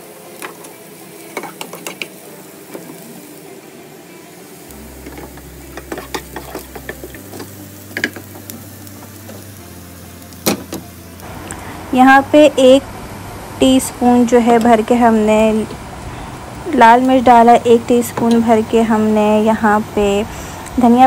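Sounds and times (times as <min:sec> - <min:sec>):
onions sizzling in oil: 0:00.0 - 0:21.0
spatula scraping a pan: 0:05.0 - 0:07.5.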